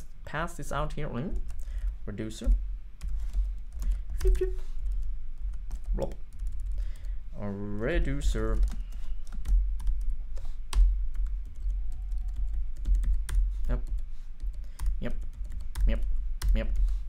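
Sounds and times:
computer keyboard typing: 0:01.3 - 0:07.2, 0:08.2 - 0:17.0.

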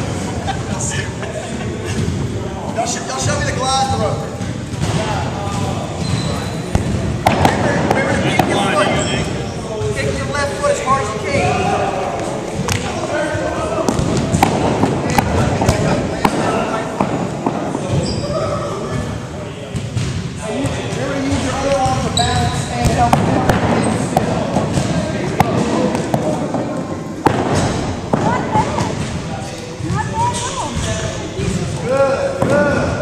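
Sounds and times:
echoing chatter: 0:00.0 - 0:33.0
balls bouncing on wooden floor: 0:03.2 - 0:09.0, 0:13.8 - 0:18.3, 0:19.7 - 0:31.8.

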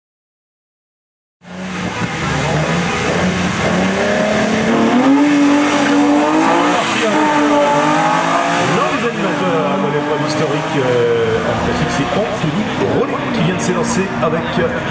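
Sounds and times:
car engine revving and accelerating: 0:01.4 - 0:14.9.

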